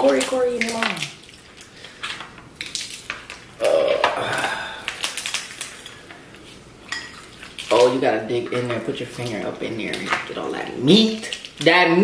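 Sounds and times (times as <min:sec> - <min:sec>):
crab shells cracking: 0:00.0 - 0:12.0.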